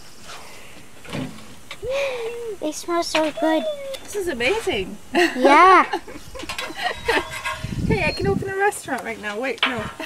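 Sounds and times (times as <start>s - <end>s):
person speaking: 1.8s - 6.0s.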